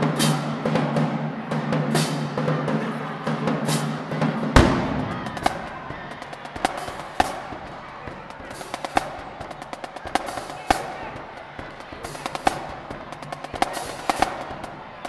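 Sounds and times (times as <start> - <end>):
crowd chatter: 0.0 - 15.0
snare drum cracks: 0.1 - 0.6, 1.9 - 2.3, 3.6 - 15.0.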